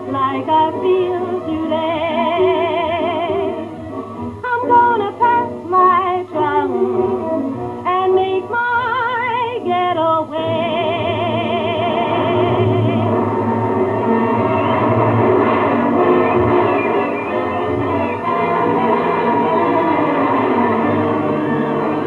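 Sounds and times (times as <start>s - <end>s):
woman singing with vibrato: 0.0s - 3.7s, 4.4s - 13.2s
band accompaniment: 12.2s - 22.0s.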